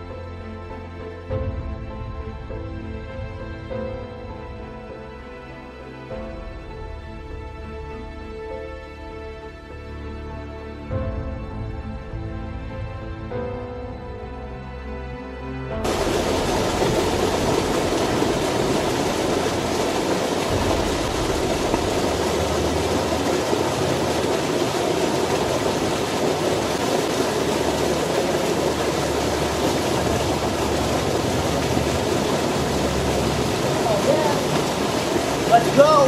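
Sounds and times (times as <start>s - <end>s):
music: 0.0s - 36.0s
creek water rushing: 15.8s - 36.0s.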